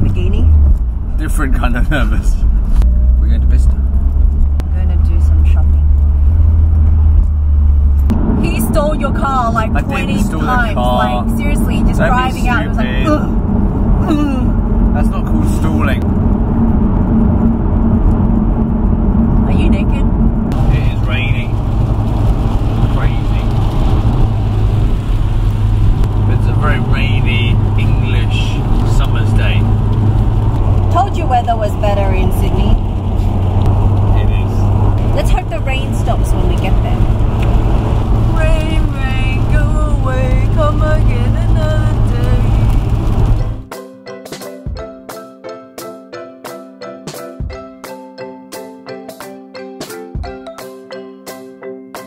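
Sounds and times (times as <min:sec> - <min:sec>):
car engine and road drone: 0:00.0 - 0:43.7.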